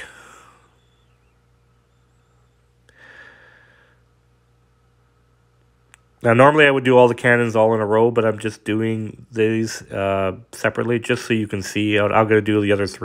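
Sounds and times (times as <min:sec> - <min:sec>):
person exhaling: 0:00.0 - 0:01.1, 0:02.9 - 0:04.1
soft click: 0:05.6 - 0:06.1.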